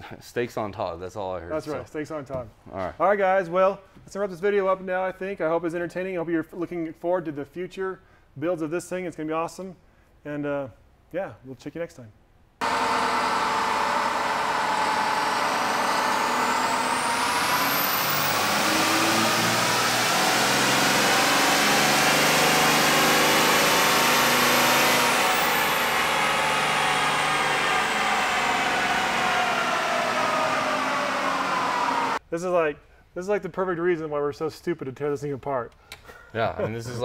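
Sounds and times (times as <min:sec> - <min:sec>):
diesel engine revving: 0:12.6 - 0:32.2
turbo whine: 0:12.6 - 0:32.2.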